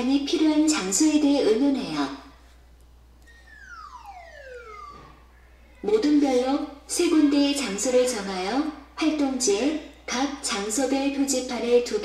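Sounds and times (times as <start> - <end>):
descending whistle sound effect: 3.3 - 5.8.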